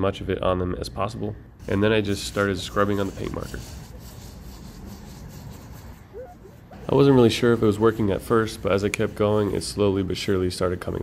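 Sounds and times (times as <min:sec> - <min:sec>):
paper towel rubbing on glass: 0:01.6 - 0:11.0.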